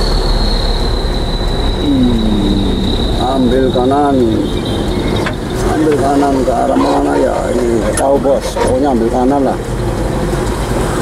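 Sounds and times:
vehicle running noise: 0.0s - 11.0s
person talking: 1.8s - 4.6s, 5.6s - 9.6s.

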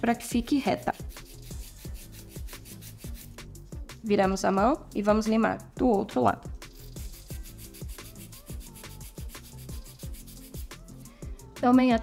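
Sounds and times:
soft background music: 0.0s - 12.0s
nail file rubbing: 0.4s - 3.7s, 6.6s - 11.1s.

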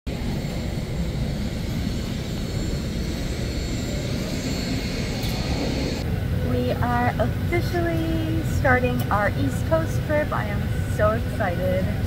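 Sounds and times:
jet airliner rumble: 0.1s - 12.0s.

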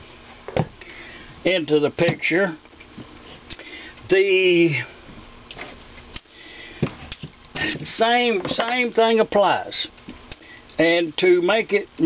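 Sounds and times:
short breath: 3.6s - 4.0s, 6.3s - 6.9s.

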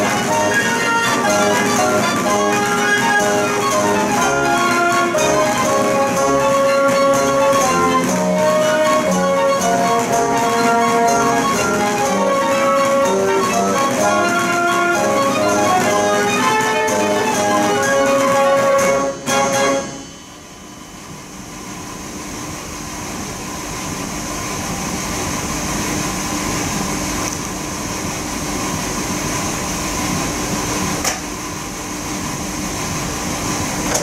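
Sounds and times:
dance organ chord: 0.0s - 20.9s
organ blower hum and hiss: 0.0s - 34.0s.

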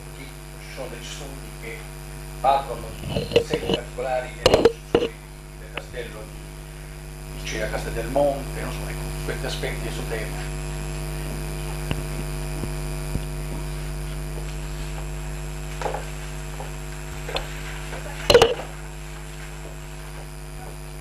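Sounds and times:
electrical mains hum: 0.0s - 21.0s.

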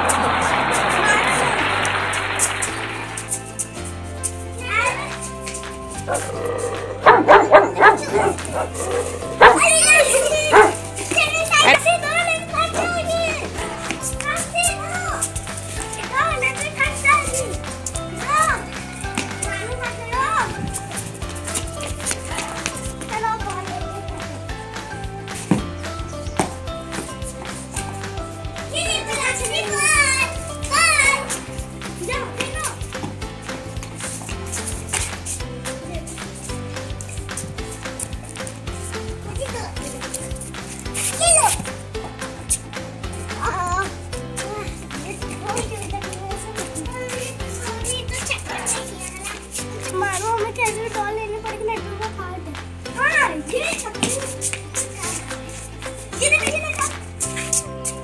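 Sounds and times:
background music with bass line: 0.0s - 58.0s
children crying and calling: 4.3s - 38.4s, 39.0s - 58.0s
puppy barking: 6.1s - 10.8s.

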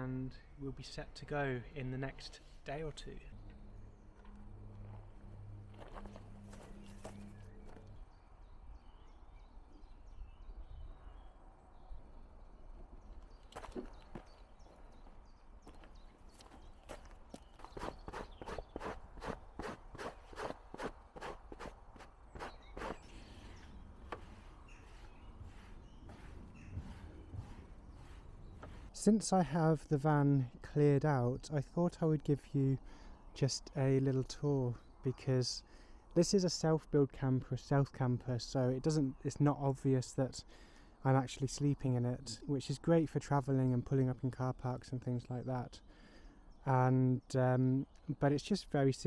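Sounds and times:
footsteps on rough ground: 4.2s - 8.0s, 13.1s - 29.0s.

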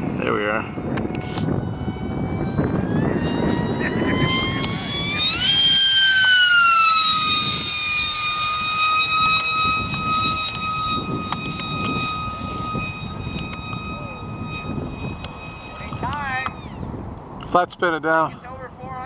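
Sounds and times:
electric motor and propeller whining: 0.0s - 19.0s.

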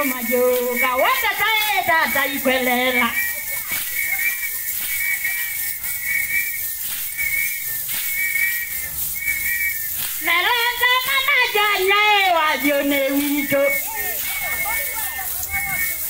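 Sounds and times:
women singing: 0.0s - 3.2s, 10.2s - 14.5s
whistle blasts: 0.0s - 16.0s.

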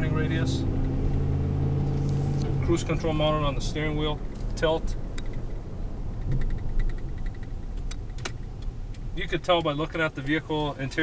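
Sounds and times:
engine and road rumble in cab: 0.0s - 11.0s.

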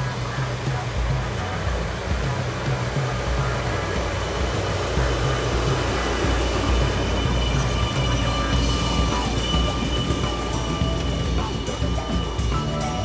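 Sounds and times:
low pulsing engine drone: 0.0s - 13.0s.

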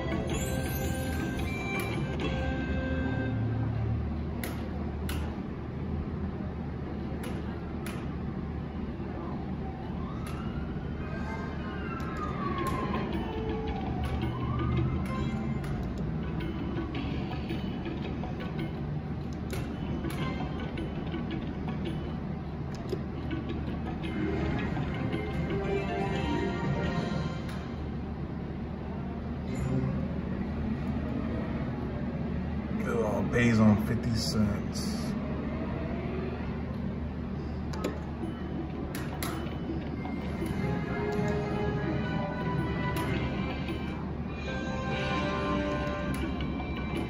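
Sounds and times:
slot machine jingle: 0.0s - 3.3s
slot machine electronic tones: 0.0s - 3.4s
slot machine game music: 0.0s - 3.4s, 24.0s - 27.5s.

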